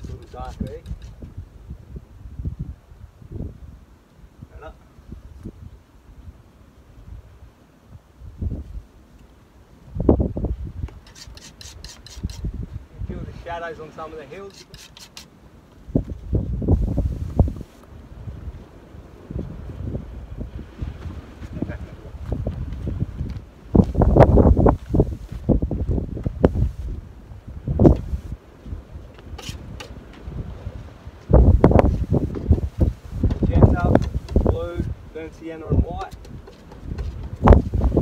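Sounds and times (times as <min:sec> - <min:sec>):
gusty wind on microphone: 0:00.0 - 0:09.0, 0:09.7 - 0:13.8, 0:15.8 - 0:38.0.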